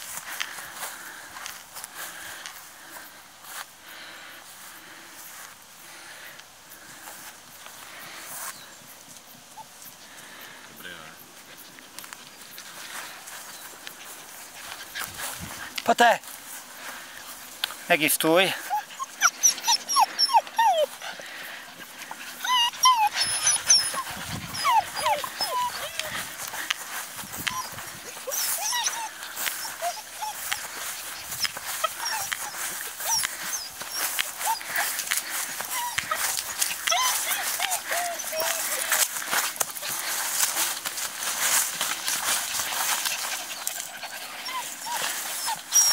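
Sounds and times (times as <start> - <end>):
dogs rustling through grass: 0.0 - 45.9
puppies squeaking: 18.6 - 21.2, 21.8 - 26.7, 27.3 - 40.8, 41.5 - 45.9.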